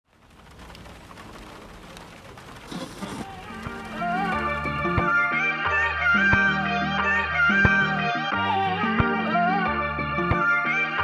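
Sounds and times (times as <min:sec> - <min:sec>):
rain on a car roof: 0:00.0 - 0:08.0.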